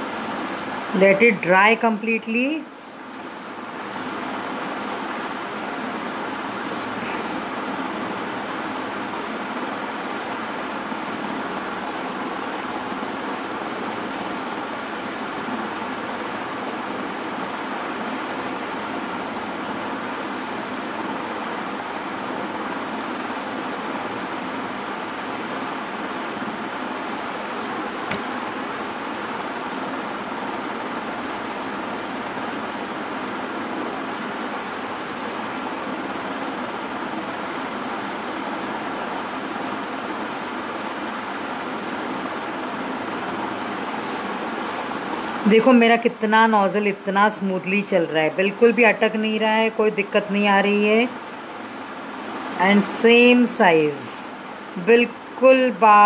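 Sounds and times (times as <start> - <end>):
steady rushing noise: 0.0 - 21.4, 25.7 - 54.5.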